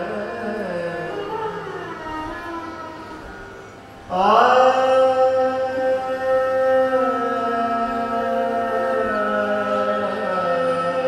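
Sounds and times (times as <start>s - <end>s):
man singing melodic improvisation: 0.0s - 2.4s, 4.1s - 11.0s.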